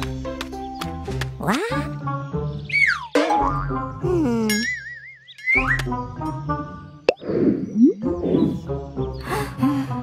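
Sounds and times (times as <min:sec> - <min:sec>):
cartoon background music: 0:00.0 - 0:10.0.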